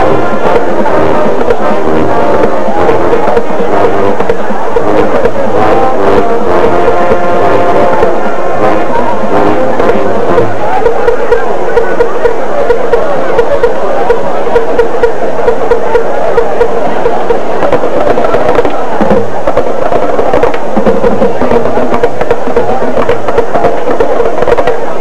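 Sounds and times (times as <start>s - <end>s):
brass band playing: 0.0s - 25.0s
drumline steady beat: 0.0s - 25.0s.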